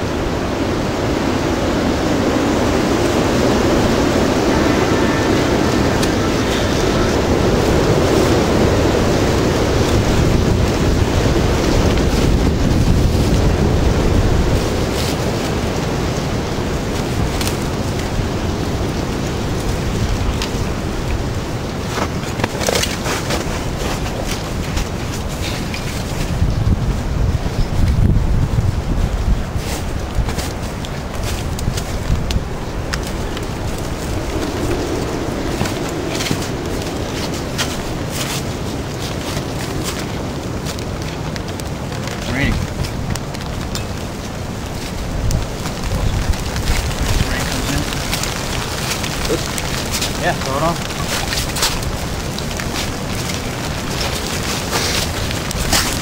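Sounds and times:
twig fire crackling: 0:00.0 - 0:56.0
wind buffeting microphone: 0:00.0 - 0:56.0.

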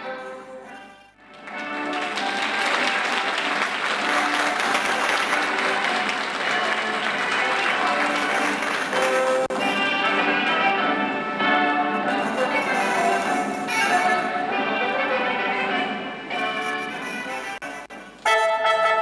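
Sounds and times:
music playing: 0:00.0 - 0:19.0
audience applauding: 0:01.1 - 0:15.2.

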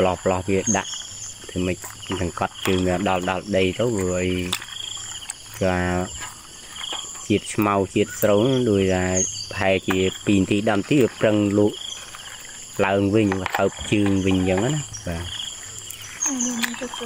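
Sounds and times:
insects chirring: 0:00.0 - 0:17.0
person talking: 0:12.8 - 0:15.3, 0:16.2 - 0:17.0.

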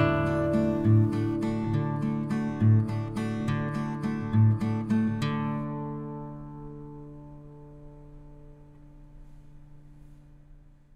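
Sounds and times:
acoustic guitar strumming: 0:00.0 - 0:10.4.

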